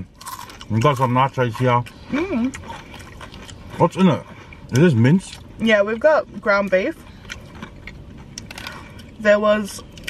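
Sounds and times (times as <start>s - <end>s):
chips crunching: 0.1s - 1.8s.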